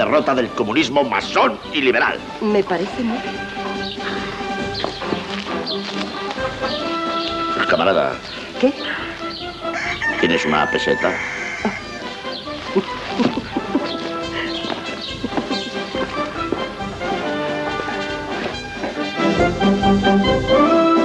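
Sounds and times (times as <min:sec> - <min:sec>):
military brass band music: 0:00.0 - 0:21.0.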